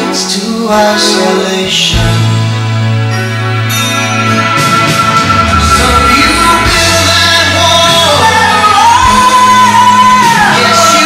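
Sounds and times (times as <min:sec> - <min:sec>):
soft rock ballad singing: 0:00.0 - 0:03.8, 0:04.4 - 0:11.0
full band accompaniment: 0:00.0 - 0:11.0.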